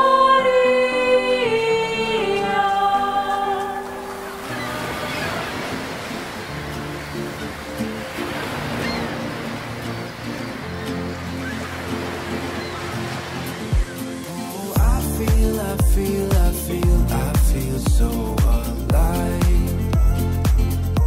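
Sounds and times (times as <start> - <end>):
soft sustained music: 0.0 - 21.0
surf breaking on rocks: 3.8 - 17.6.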